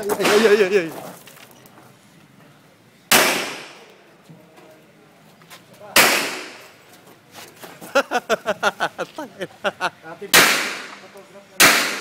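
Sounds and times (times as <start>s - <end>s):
pistol shots with echo: 3.1s - 3.8s, 6.0s - 6.6s, 10.4s - 11.0s, 11.6s - 12.0s.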